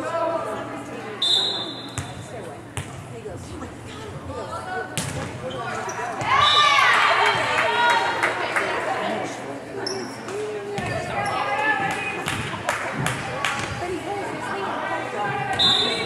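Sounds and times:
chatter echoing in gym: 0.0 - 16.0.

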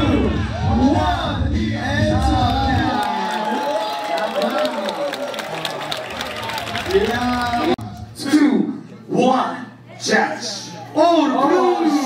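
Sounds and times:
crowd cheering and shouting: 0.0 - 8.1, 10.6 - 12.0.

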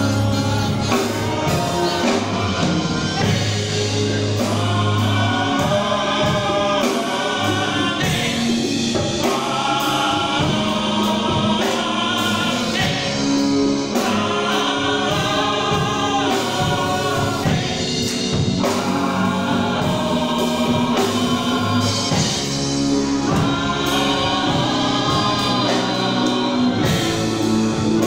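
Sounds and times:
bass line: 0.0 - 28.0
gospel choir singing: 0.0 - 28.0.

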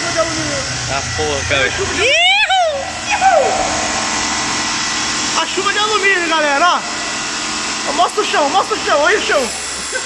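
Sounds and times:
metal lathe cutting: 0.0 - 10.0
short falling cry: 1.8 - 4.4
person shouting: 2.0 - 3.9.

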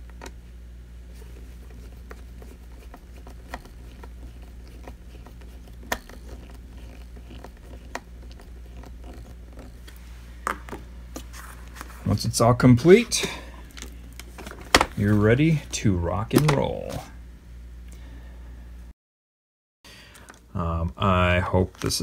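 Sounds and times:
steady low hum: 0.0 - 18.9, 19.9 - 22.0.

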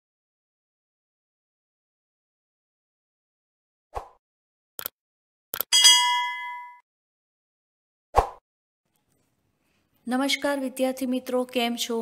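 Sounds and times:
bright bell ding: 5.7 - 6.8.

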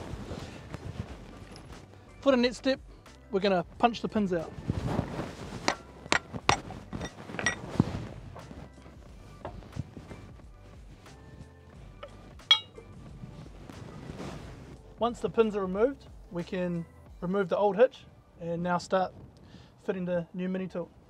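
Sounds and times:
background music: 0.0 - 21.0
hammer striking steel punch: 12.5 - 12.8
sharp ringing metal clink: 12.5 - 12.8.

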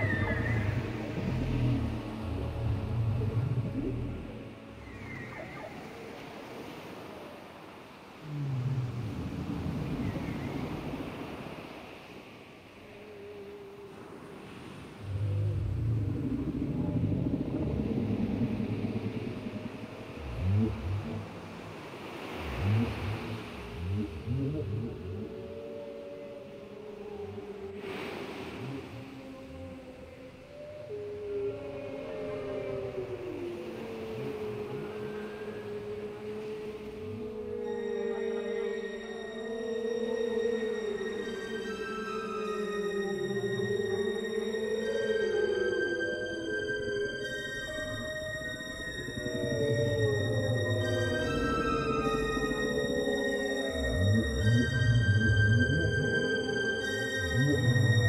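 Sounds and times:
whale moans: 0.0 - 7.1, 8.1 - 11.5, 12.9 - 58.0.

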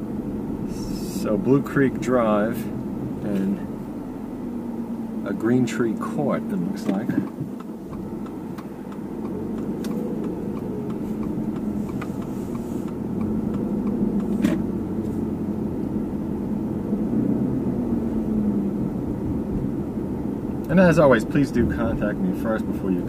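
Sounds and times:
car engine and road noise: 0.0 - 23.0.

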